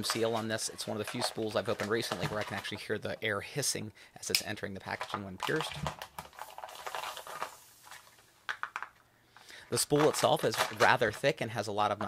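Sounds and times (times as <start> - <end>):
plastic crinkling: 0.0 - 3.0, 4.7 - 9.0, 9.7 - 12.0
air hissing into bag: 6.4 - 8.1.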